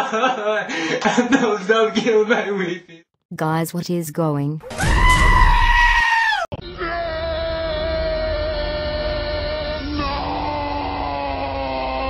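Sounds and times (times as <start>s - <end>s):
cartoon goat screaming: 4.7s - 9.0s.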